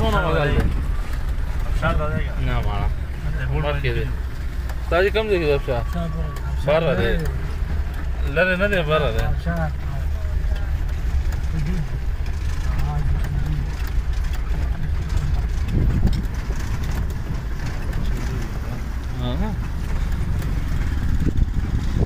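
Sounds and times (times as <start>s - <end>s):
faint voices: 0.0s - 21.5s
tyres on rough road: 0.0s - 22.0s
vehicle engine rumble: 0.0s - 22.0s.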